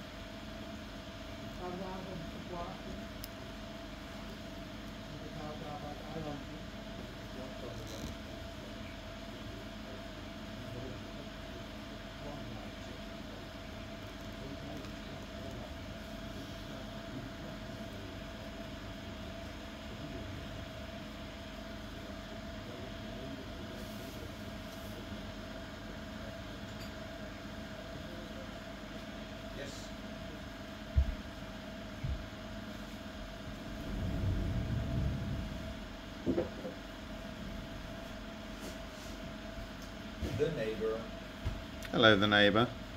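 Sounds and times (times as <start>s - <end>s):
machine hum with low rumble: 0.0s - 42.9s.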